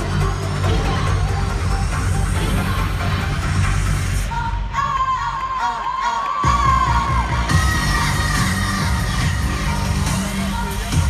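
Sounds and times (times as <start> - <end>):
heavy pulsing bass beat: 0.0 - 4.6, 6.4 - 11.0
live pop concert music: 0.0 - 11.0
crowd cheering and screaming: 4.8 - 11.0.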